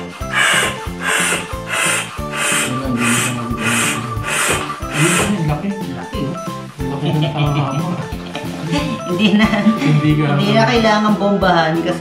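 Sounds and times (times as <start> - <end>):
floor pump air strokes: 0.0 - 5.5
background music: 0.0 - 12.0.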